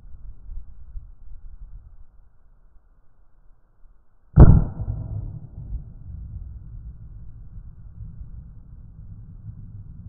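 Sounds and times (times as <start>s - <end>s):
shotgun shot: 4.4s - 9.7s
low rumbling echo: 4.4s - 10.0s.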